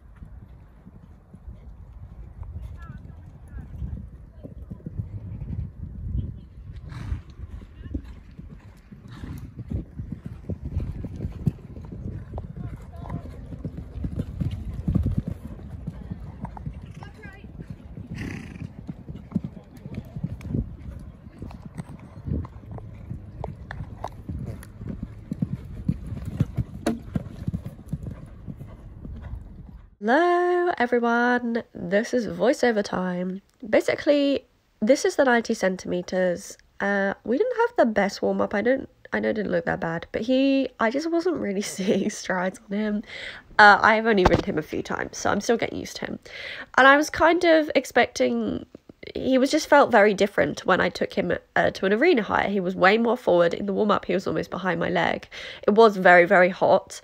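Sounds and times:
other horses' hooves: 0.0 - 30.0, 43.7 - 45.4.

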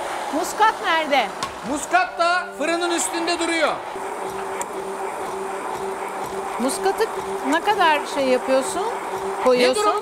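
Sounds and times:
stick blender running: 0.0 - 10.0.

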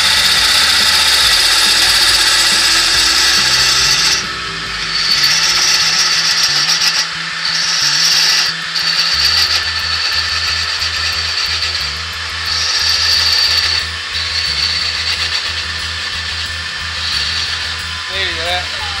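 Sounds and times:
wood lathe cutting whine: 0.0 - 19.0.

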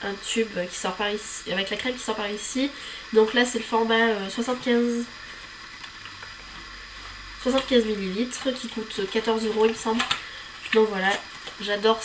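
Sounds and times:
recording hiss: 0.0 - 12.0.

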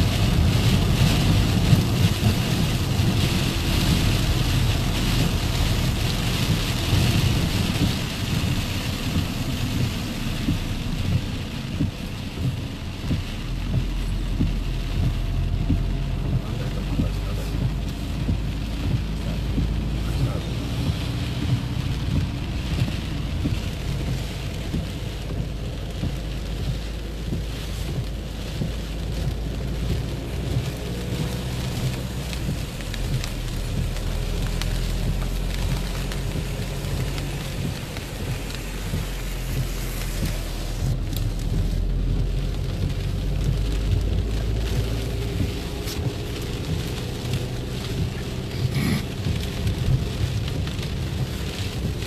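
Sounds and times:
heavy rain on car roof: 0.0 - 52.0
road and engine rumble: 0.0 - 52.0.

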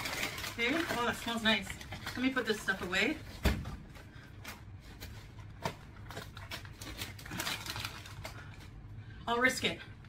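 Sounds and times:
plastic bags rustling: 0.0 - 8.9.

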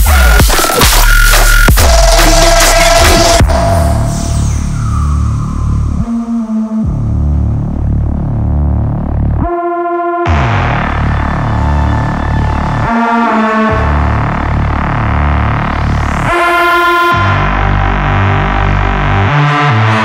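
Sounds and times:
heavy synth bass riff: 0.0 - 20.0
higher synth stab: 1.8 - 5.9.

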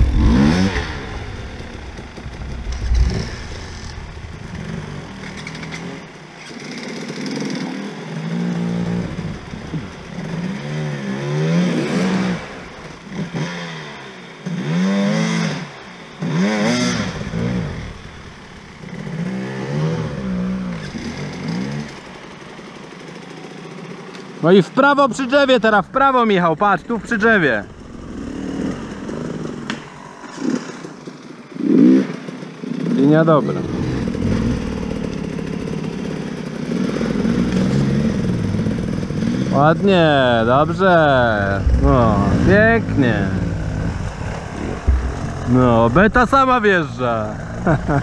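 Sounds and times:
dirt bike engines revving: 0.0 - 48.0.

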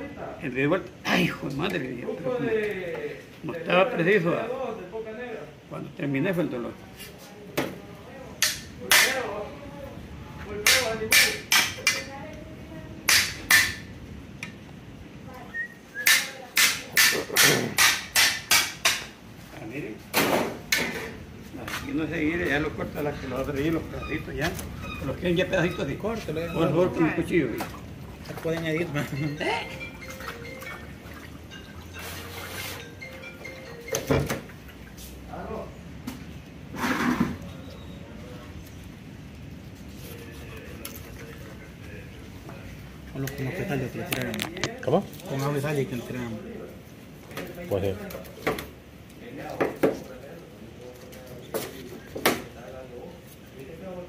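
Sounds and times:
hammer striking machete: 8.4 - 9.2, 10.6 - 12.1, 13.1 - 13.8, 16.0 - 19.1
faint background music: 28.4 - 35.7.

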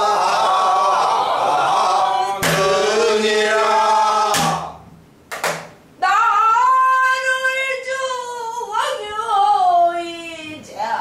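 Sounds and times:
barrel drum strokes: 2.4 - 3.0, 4.3 - 5.7.

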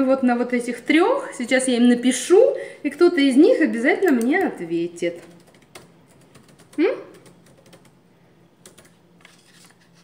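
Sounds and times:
computer keyboard typing: 5.1 - 8.0, 8.6 - 9.7.

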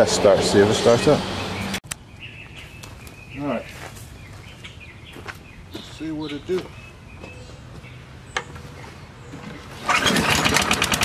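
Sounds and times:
footsteps on dirt: 2.2 - 9.9.

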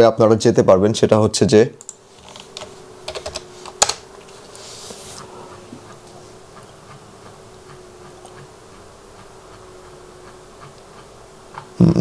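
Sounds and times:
steady low hum: 0.0 - 12.0
computer clicks: 1.8 - 4.0.

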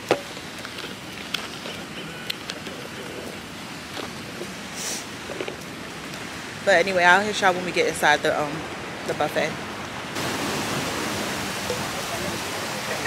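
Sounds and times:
outdoor background noise: 0.0 - 13.0
brief hiss: 4.8 - 5.1.

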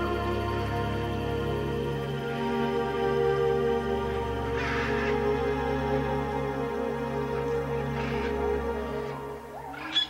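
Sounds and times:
ambient drone music: 0.0 - 10.0
faint animal calls: 4.4 - 10.0.

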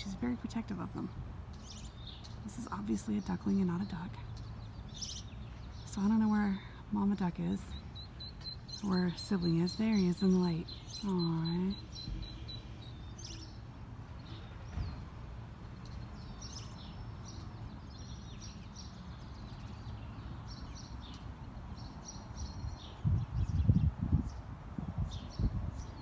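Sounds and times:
high bird chirps: 3.9 - 6.0.

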